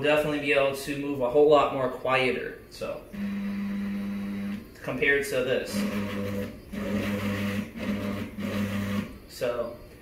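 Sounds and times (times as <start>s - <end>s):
stepper motor humming: 5.7s - 9.2s.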